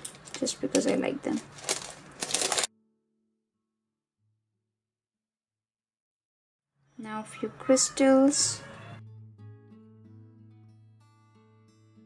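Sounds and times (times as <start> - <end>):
small decorations rustling and clicking: 0.0 - 2.7.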